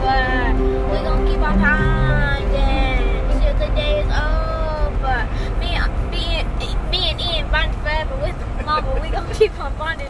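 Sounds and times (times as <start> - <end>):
car cabin rumble: 0.0 - 10.0
child singing and speaking: 0.0 - 10.0.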